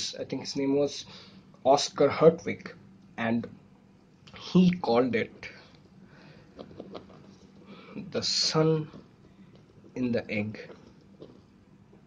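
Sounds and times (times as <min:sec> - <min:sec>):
pen scratching on paper: 0:06.4 - 0:12.0.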